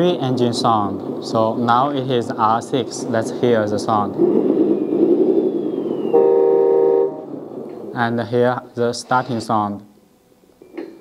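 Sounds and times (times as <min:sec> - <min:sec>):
electronic horn tone: 0:06.1 - 0:07.3.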